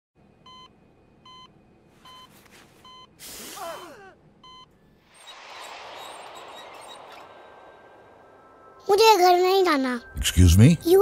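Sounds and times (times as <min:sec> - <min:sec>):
patient monitor beeping: 0:00.4 - 0:03.2, 0:04.4 - 0:04.8.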